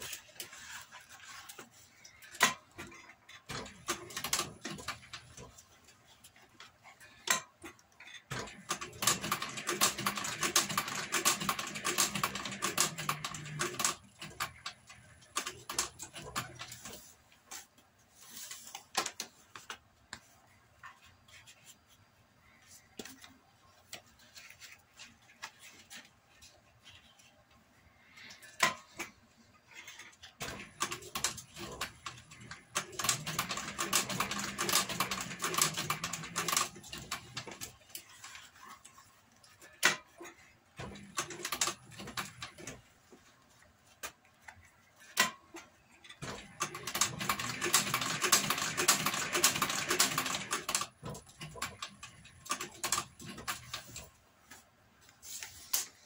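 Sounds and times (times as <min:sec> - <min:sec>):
leather sewing machine clatter: 0:08.3 - 0:17.0, 0:29.8 - 0:38.7, 0:46.2 - 0:54.1
sewing machine clicks: 0:08.3 - 0:17.0, 0:30.4 - 0:37.7, 0:40.8 - 0:42.8, 0:46.2 - 0:54.1.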